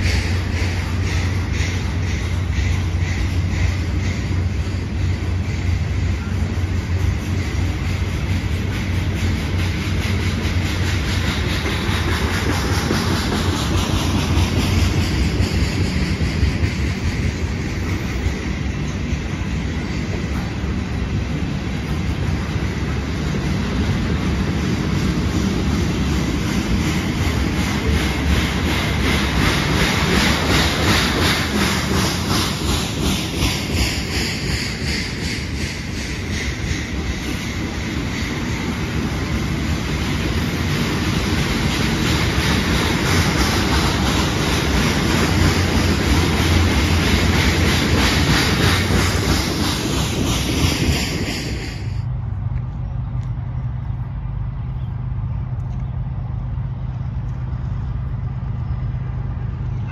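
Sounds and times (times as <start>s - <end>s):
train wheels rumbling on rails: 0.0s - 59.9s
rhythmic wheel clatter: 6.8s - 18.4s, 22.2s - 51.9s.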